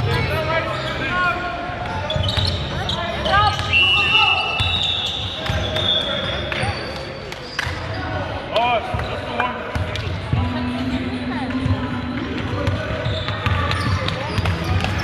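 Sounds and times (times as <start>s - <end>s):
sneaker squeaks: 1.8s - 10.3s, 11.2s - 15.0s.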